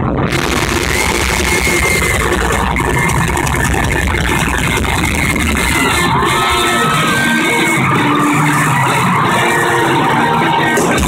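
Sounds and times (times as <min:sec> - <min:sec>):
live rock band and crowd: 0:00.0 - 0:11.0.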